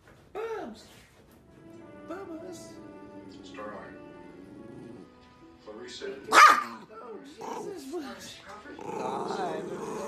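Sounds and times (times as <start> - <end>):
small dog growling: 4.4 - 5.1, 7.3 - 8.0, 8.7 - 10.0.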